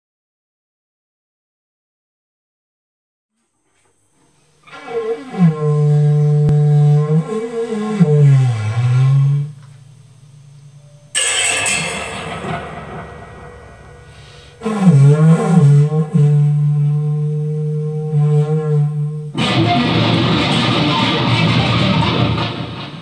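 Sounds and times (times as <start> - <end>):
low bending drone tone: 4.8 - 23.0
noisy crash: 11.0 - 16.6.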